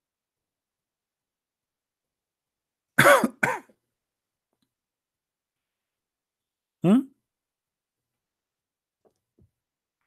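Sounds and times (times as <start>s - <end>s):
man clearing his throat: 3.0s - 3.8s.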